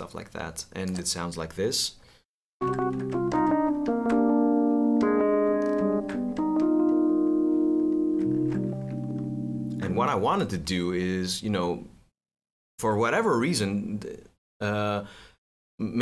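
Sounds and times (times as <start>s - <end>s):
electric piano chords: 2.6s - 10.0s.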